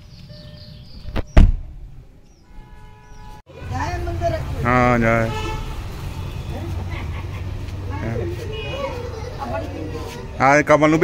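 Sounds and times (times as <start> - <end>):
car door shutting: 1.1 - 1.7.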